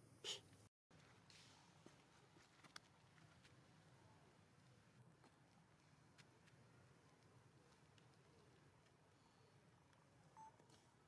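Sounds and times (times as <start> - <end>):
faint beep: 10.4 - 10.6.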